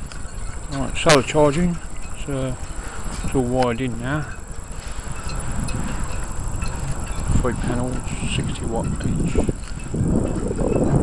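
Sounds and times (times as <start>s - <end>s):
faint light clinks: 0.0s - 11.0s
wind buffeting microphone: 0.0s - 11.0s.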